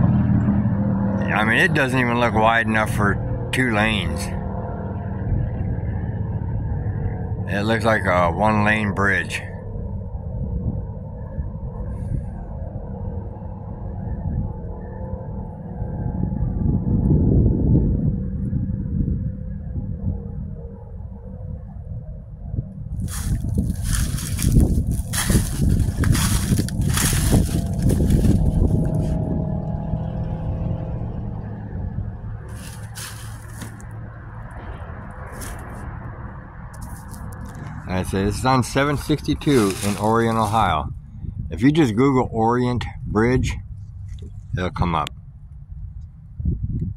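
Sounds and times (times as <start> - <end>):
road traffic rumble: 0.0 - 46.9
rough crackling noise: 22.9 - 29.3, 32.5 - 40.9.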